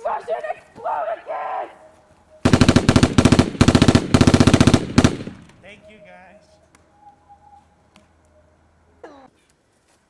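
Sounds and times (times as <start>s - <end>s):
machine-gun fire: 2.5s - 5.6s.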